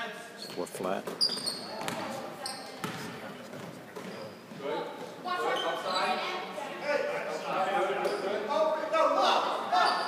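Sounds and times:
sneakers squeaking on court: 0.4s - 6.2s
basketball bouncing: 1.0s - 2.1s, 2.8s - 4.1s.

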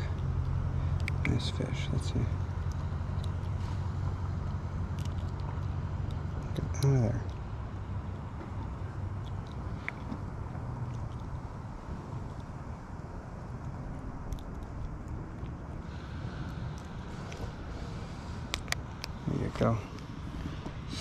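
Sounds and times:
low outdoor rumble: 0.0s - 21.0s.

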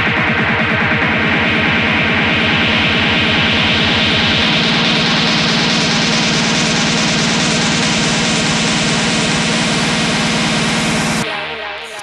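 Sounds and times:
hard techno music: 0.0s - 11.6s.

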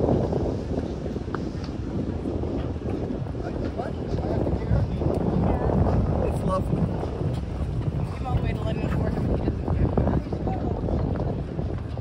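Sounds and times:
wind buffeting microphone: 0.0s - 12.0s
people talking: 3.4s - 6.9s, 8.0s - 11.4s.

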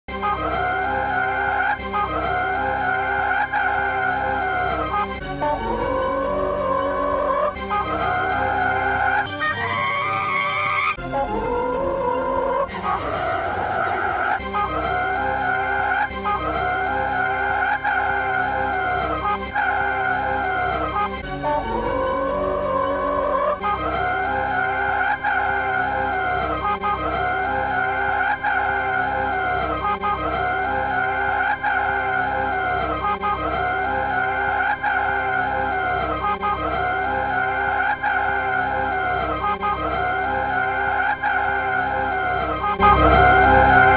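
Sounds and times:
creature screeching: 8.2s - 11.0s, 12.7s - 20.8s, 27.8s - 29.8s
cartoon creature screeching: 8.3s - 11.0s.

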